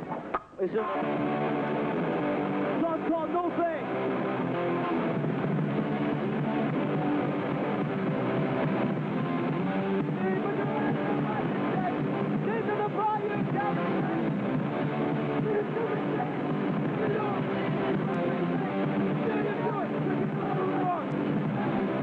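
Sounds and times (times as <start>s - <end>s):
distorted electric guitar music: 0.0s - 22.0s.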